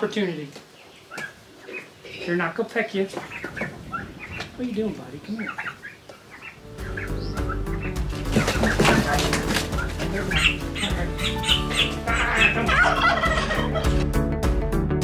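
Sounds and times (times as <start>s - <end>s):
young turkeys calling: 0.0s - 14.0s
turkey flapping wings: 3.1s - 13.8s
background music: 6.4s - 15.0s.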